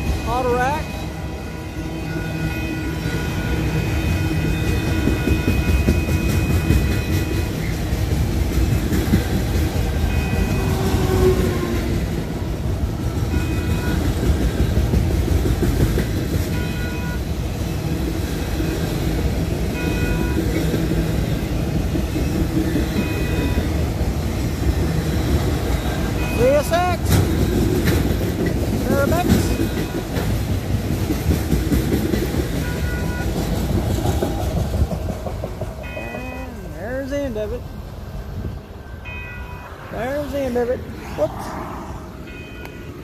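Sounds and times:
high ringing tone: 0.0s - 7.6s, 10.0s - 11.2s, 21.4s - 23.8s, 35.8s - 37.4s, 38.8s - 43.0s
freight cars rumbling on rails: 0.0s - 43.0s.

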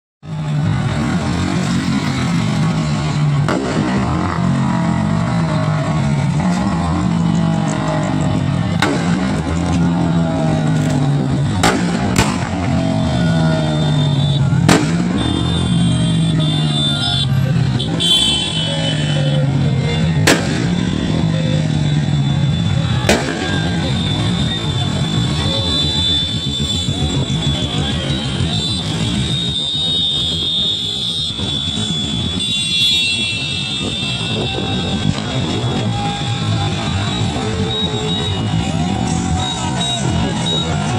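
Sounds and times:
motorcycle engines at low speed: 0.2s - 40.9s.

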